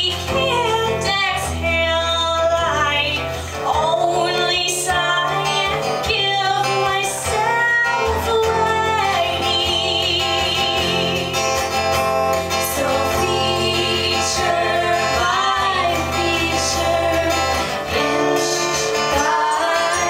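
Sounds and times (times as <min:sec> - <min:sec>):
woman singing: 0:00.0 - 0:11.8, 0:12.4 - 0:20.0
acoustic guitar: 0:00.0 - 0:20.0.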